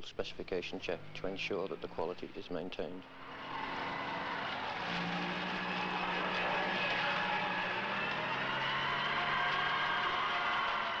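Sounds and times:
tracked vehicle engine running: 0:00.3 - 0:11.0
tracks climbing wet ramp: 0:03.2 - 0:11.0.

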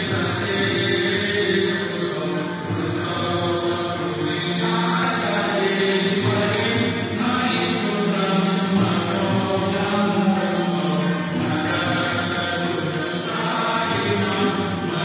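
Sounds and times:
devotional chanting with music: 0:00.0 - 0:15.0.

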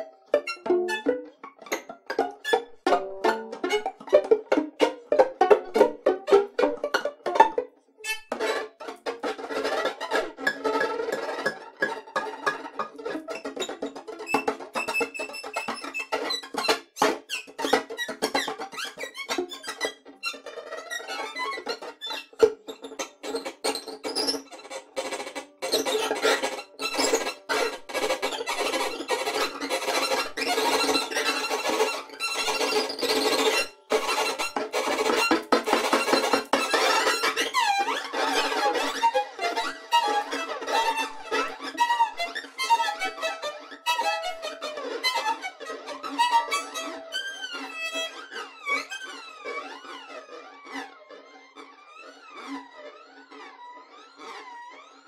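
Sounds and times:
experimental string music: 0:00.0 - 0:55.0.

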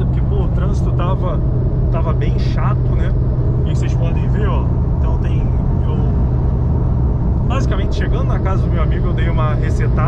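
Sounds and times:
car engine drone inside cabin: 0:00.0 - 0:10.0
road noise: 0:00.0 - 0:10.0.

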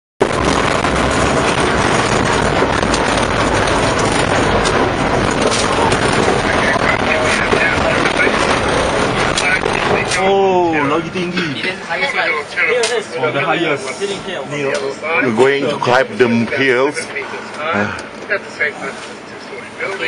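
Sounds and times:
tracked vehicle engine and running gear: 0:00.2 - 0:13.4
knocks and rattles: 0:00.3 - 0:10.2
passengers chatting: 0:01.2 - 0:20.0.

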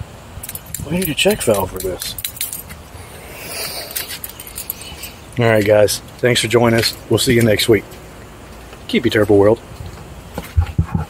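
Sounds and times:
keys jangling: 0:00.4 - 0:02.8, 0:03.6 - 0:05.2
rustle of handling: 0:00.4 - 0:11.0.

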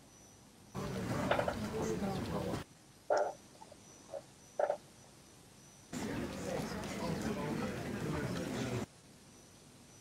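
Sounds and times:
short animal calls: 0:03.1 - 0:03.4, 0:04.0 - 0:04.9.

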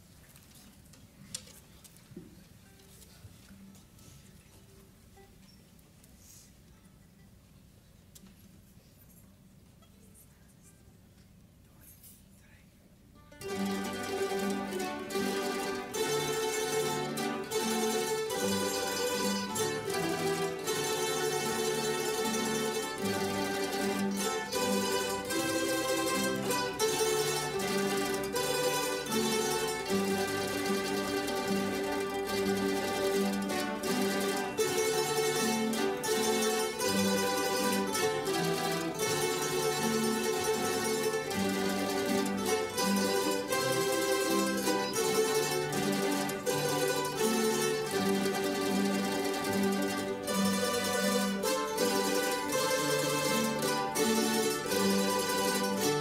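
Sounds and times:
mandolins and guitars playing: 0:13.1 - 0:56.0.

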